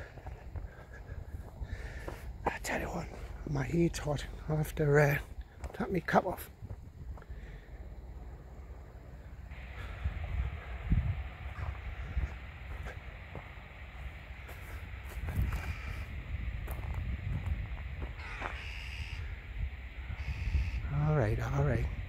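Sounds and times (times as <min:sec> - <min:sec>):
low wind rumble: 0:00.0 - 0:22.0
crows cawing: 0:14.4 - 0:16.2, 0:18.1 - 0:21.0.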